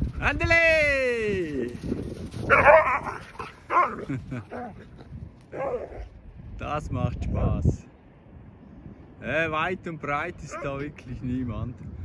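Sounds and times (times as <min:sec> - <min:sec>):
dogs barking and yipping: 0:02.2 - 0:06.1.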